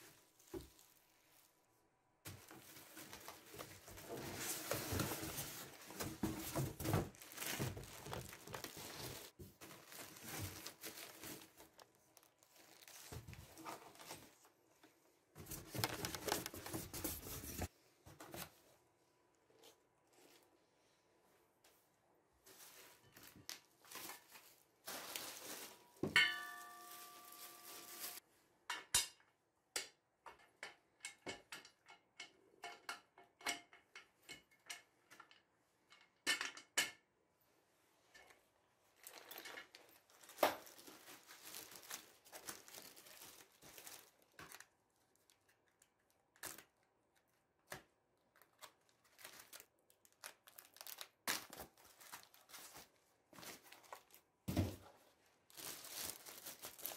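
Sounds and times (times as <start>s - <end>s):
plastic wrapping rustling: 0.0s - 1.7s, 2.3s - 14.6s, 15.4s - 17.7s, 22.4s - 28.2s, 39.0s - 46.8s, 48.3s - 56.9s
clicks and knocks of parts: 28.7s - 37.0s.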